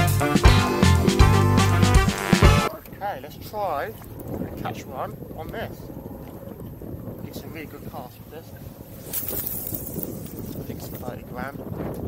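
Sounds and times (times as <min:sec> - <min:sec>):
water around boat: 0:00.0 - 0:12.0
wind on microphone: 0:02.8 - 0:12.0.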